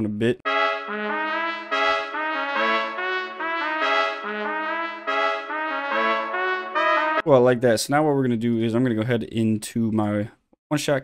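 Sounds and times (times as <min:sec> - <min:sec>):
trumpet playing looped chords: 0:00.4 - 0:07.2.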